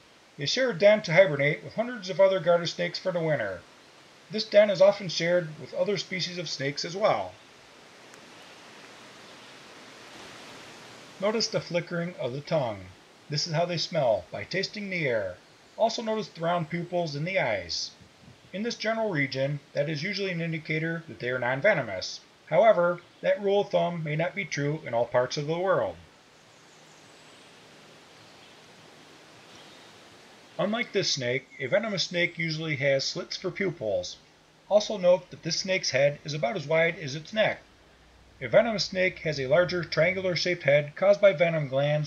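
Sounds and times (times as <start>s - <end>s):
faint outdoor hiss: 0.0s - 42.0s.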